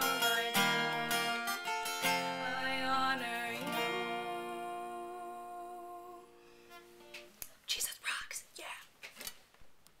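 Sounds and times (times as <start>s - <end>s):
woman whispering: 7.7s - 9.0s.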